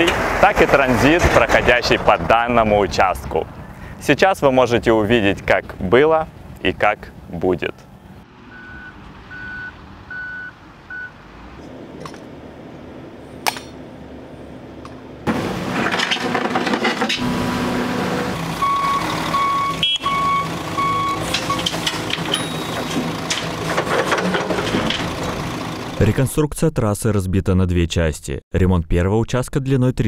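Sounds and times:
heavy construction machinery: 0.0s - 3.4s, 8.3s - 26.1s
lower-pitched reversing alarm: 8.5s - 11.2s, 17.9s - 21.7s
reversing alarm beeping: 8.5s - 11.2s, 18.6s - 22.9s.

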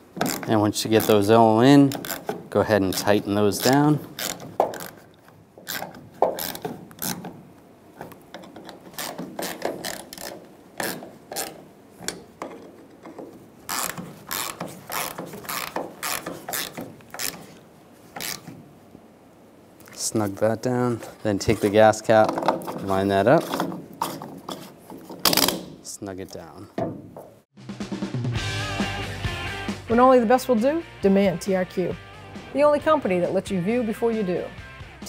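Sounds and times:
hand ratchet clicking: 1.8s - 7.4s, 8.0s - 17.6s, 18.2s - 18.6s.

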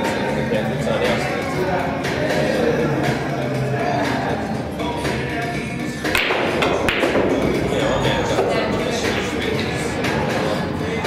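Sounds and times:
background music: 0.0s - 11.0s
pool balls clacking: 5.9s - 11.0s
cue striking ball: 6.1s - 8.6s.

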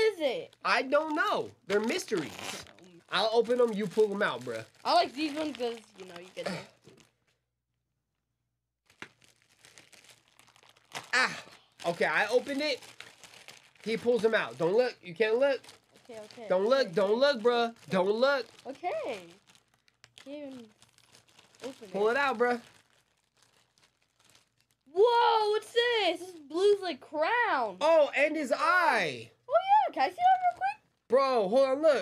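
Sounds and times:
plastic bag crinkling: 0.2s - 7.4s, 8.8s - 24.9s
plastic bag tearing crack: 1.0s - 7.3s, 8.8s - 14.8s, 15.5s - 24.9s.

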